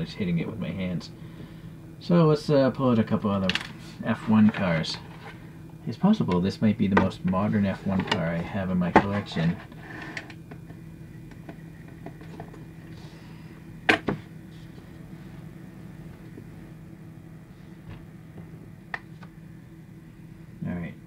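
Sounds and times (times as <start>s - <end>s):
motorised turntable humming: 0.0s - 21.0s.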